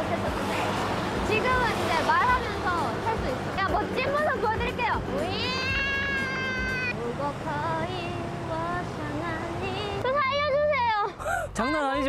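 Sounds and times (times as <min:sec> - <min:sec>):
woman crying wow: 0:05.4 - 0:06.9.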